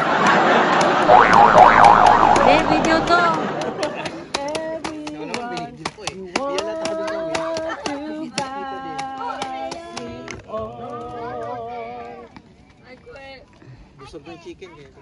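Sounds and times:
hand claps: 0:03.1 - 0:10.4
people singing: 0:06.5 - 0:12.2.

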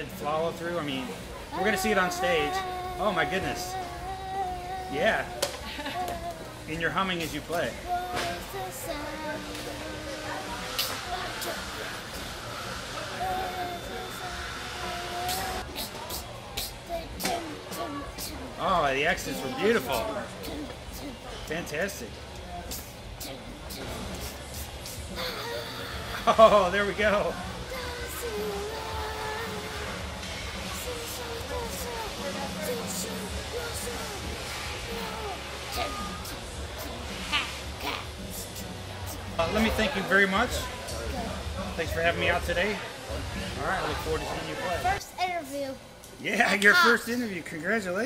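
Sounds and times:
faint background music: 0:00.0 - 0:48.0
low background murmur: 0:00.0 - 0:48.0
child humming: 0:01.5 - 0:06.7, 0:07.8 - 0:11.9, 0:13.1 - 0:18.5, 0:22.7 - 0:26.4, 0:27.6 - 0:30.1, 0:30.7 - 0:39.3
child humming softly: 0:01.5 - 0:06.7, 0:13.0 - 0:18.5, 0:22.7 - 0:26.3.

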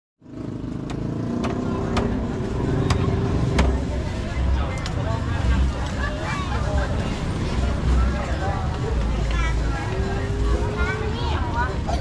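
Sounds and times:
low engine-like rumble: 0:00.8 - 0:12.0.

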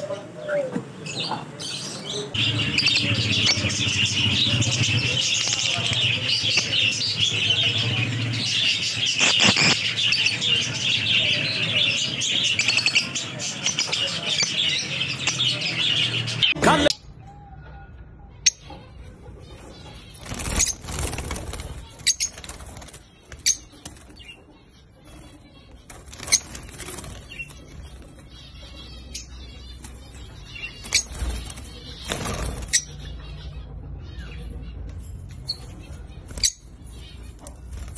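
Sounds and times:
lovebirds chattering: 0:00.0 - 0:17.1, 0:18.3 - 0:37.9
flutter of wings: 0:20.2 - 0:24.0.

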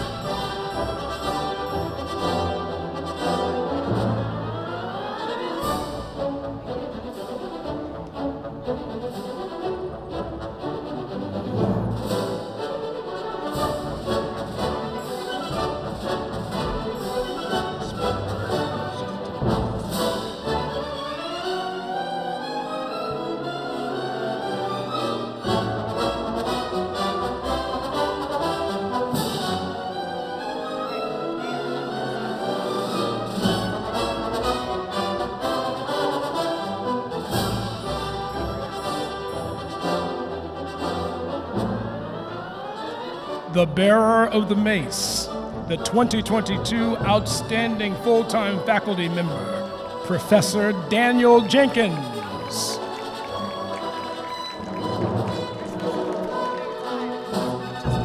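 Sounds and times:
orchestral brass music: 0:00.0 - 0:58.0.

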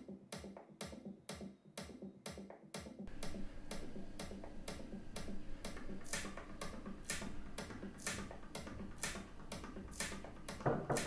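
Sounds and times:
low steady hum: 0:03.1 - 0:10.7.

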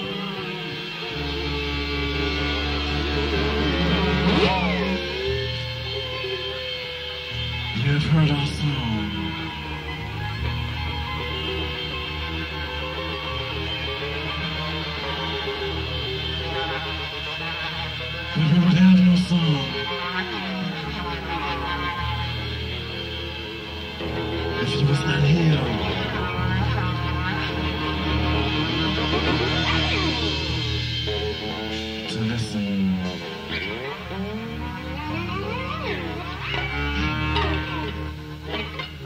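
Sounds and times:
held bass notes: 0:00.0 - 0:39.0.

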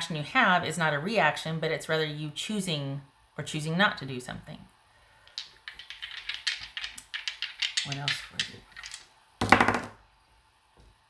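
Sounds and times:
cards being shuffled: 0:05.3 - 0:09.0.

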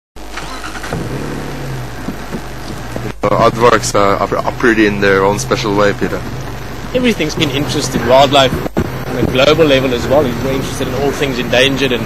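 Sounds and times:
vehicle engine idling: 0:00.4 - 0:12.0.

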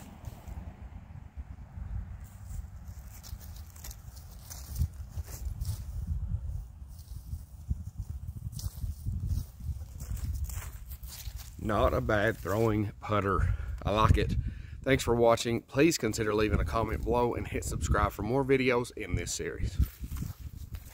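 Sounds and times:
wind buffeting microphone: 0:00.0 - 0:15.3, 0:16.1 - 0:18.4, 0:19.0 - 0:20.9.

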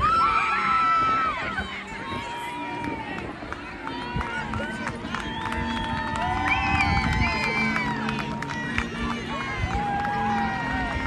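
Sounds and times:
crowd talking and calling out: 0:00.0 - 0:11.0
scattered claps: 0:02.8 - 0:11.0.

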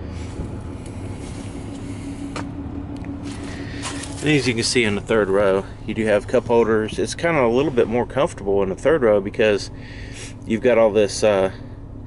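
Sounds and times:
car engine idling: 0:00.0 - 0:12.0
faint steady hum: 0:00.0 - 0:12.0.

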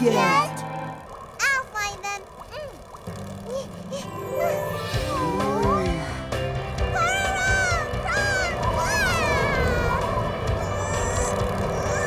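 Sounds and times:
background music: 0:00.0 - 0:01.4, 0:03.2 - 0:12.0
squeaky cartoon voice crying out: 0:07.0 - 0:10.0.

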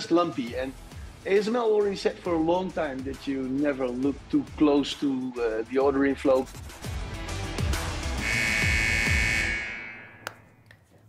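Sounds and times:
bright sustained synth chord: 0:08.3 - 0:10.3.

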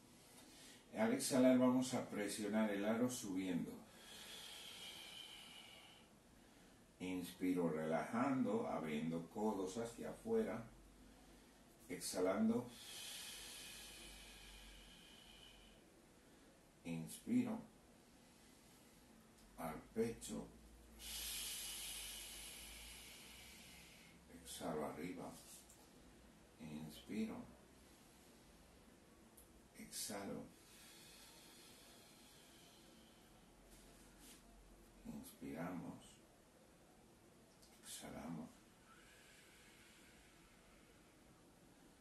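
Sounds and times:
man exhaling through mouth: 0:21.0 - 0:24.2.

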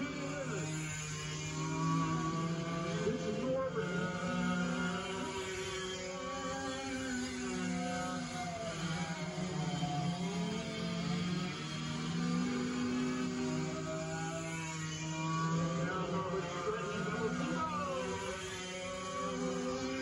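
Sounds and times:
go-kart engines racing: 0:00.0 - 0:20.0.

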